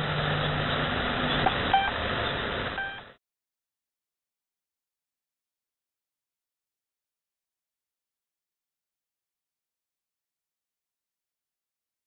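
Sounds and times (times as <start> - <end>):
short radio beeps: 1.4 - 2.0, 2.8 - 3.2.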